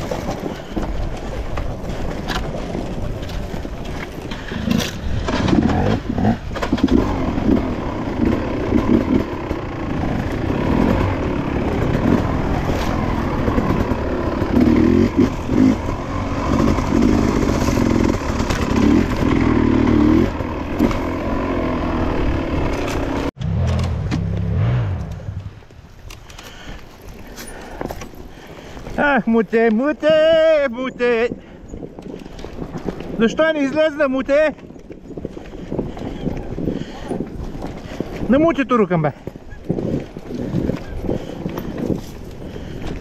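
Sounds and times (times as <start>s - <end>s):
dirt bike engine revving: 4.4s - 25.4s.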